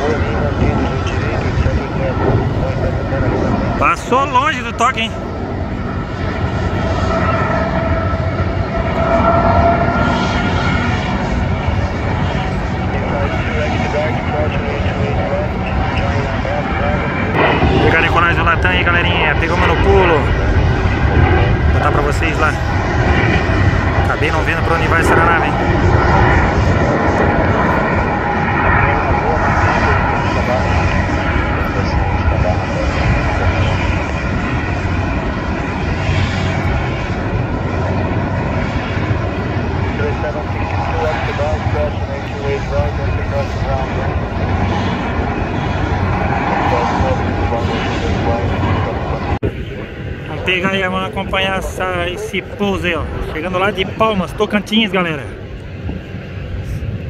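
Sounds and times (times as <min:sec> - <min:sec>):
jet engines at takeoff power: 0:00.0 - 0:57.0.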